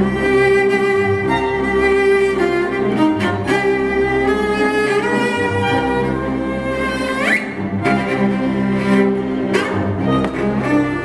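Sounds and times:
solo cello: 0.0 - 11.0
string orchestra: 0.0 - 11.0.

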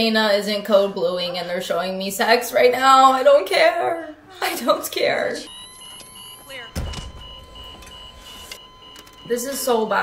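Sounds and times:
hospital alarm beeping: 3.8 - 10.0.

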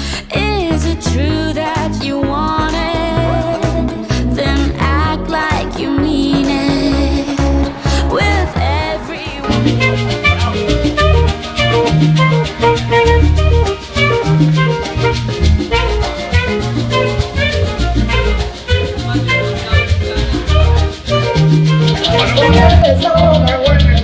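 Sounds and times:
live salsa band: 2.6 - 24.0.

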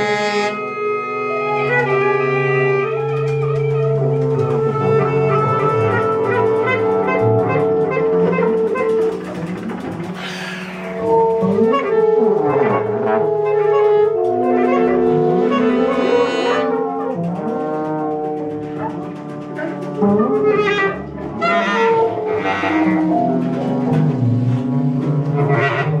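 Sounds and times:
small jazz band playing: 0.0 - 26.0.

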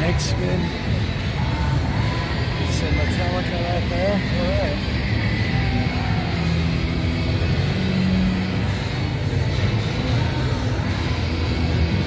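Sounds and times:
background music: 0.0 - 12.0
indoor hall crowd din: 0.0 - 12.0.

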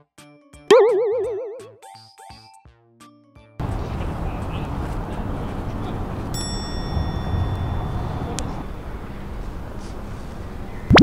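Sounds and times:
cartoon boing sound effect: 0.7 - 1.8.

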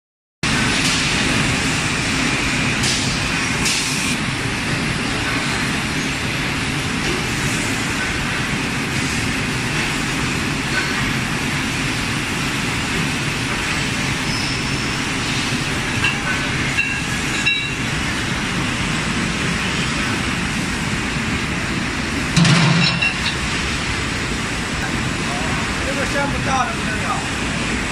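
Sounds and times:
loud clunk: 22.4 - 23.4.

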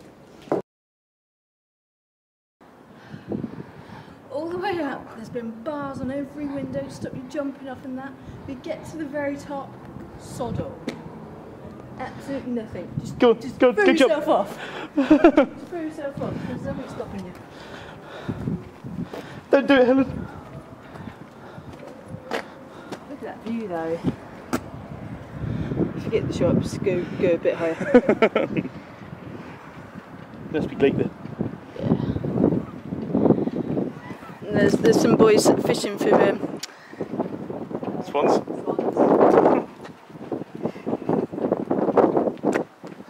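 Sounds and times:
wind buffeting microphone: 2.8 - 43.0
footsteps on stone: 15.6 - 25.4, 38.8 - 43.0.

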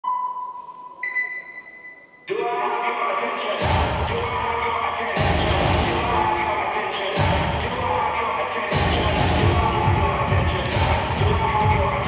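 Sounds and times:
electronic beep tones: 0.0 - 2.3.

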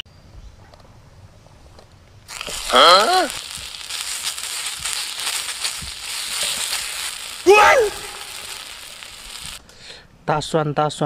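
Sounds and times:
garlic sizzling on hot plate: 2.3 - 9.6.

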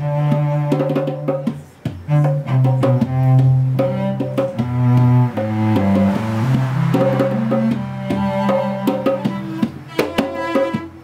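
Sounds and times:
cello bowed low notes: 0.0 - 11.0
hand drum strokes: 0.0 - 11.0.

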